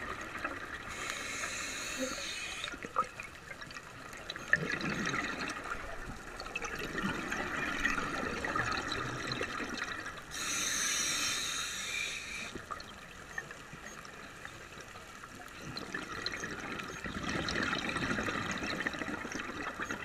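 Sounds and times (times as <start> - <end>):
exhaled bubbles burbling underwater: 0.0 - 10.4, 14.7 - 20.0
regulator hissing inhalation: 0.9 - 2.8, 10.3 - 12.6.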